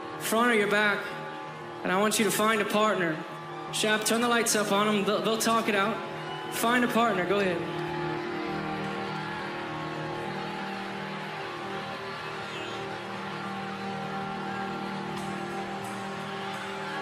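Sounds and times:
murmur of large crowd: 0.0s - 17.0s
band holding a chord: 6.9s - 17.0s.

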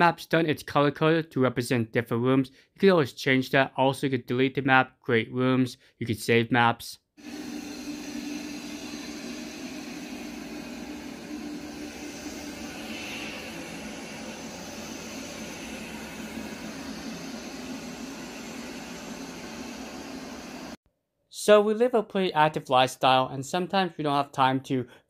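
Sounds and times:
robot vacuum whirring: 7.2s - 20.8s
low hum: 7.3s - 20.8s.

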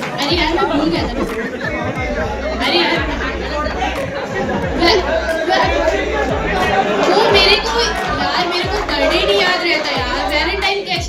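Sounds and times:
crowd chatter in a hall: 0.0s - 11.0s
music beat: 0.0s - 11.0s.

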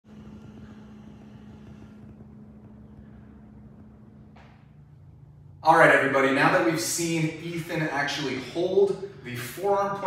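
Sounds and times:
faint low hum: 0.0s - 10.0s
low rumble: 0.0s - 10.0s.

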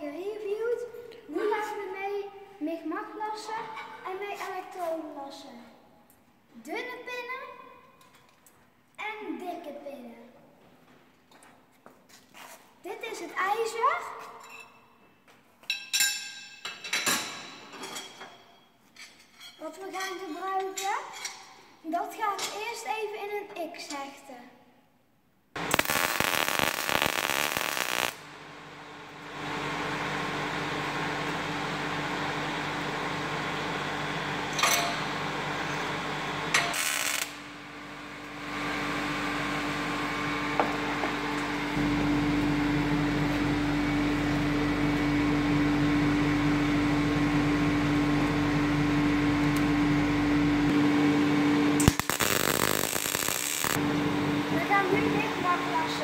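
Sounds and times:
welding arc crackling: 25.6s - 28.3s, 36.6s - 37.4s, 51.8s - 53.8s
electrical hum: 25.6s - 56.0s.

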